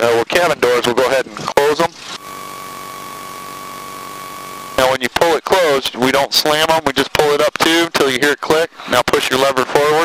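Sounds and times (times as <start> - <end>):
thin steady whine: 0.0 - 10.0.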